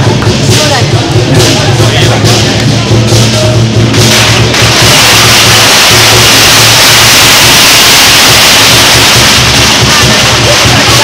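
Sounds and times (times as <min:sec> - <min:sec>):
cymbals clashing: 0:00.0 - 0:11.0
drums: 0:00.0 - 0:11.0
gongs: 0:00.0 - 0:11.0.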